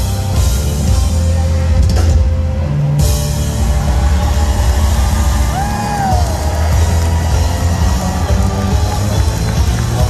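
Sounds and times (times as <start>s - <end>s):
live soft-rock band: 0.0s - 10.0s.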